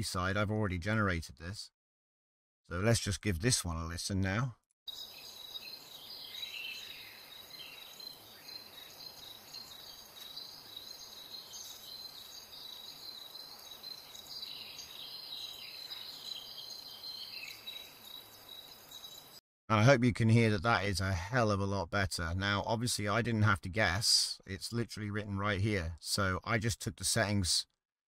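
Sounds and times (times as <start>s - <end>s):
bird-like chirps: 4.9s - 19.4s
high insect chirring: 4.9s - 19.4s.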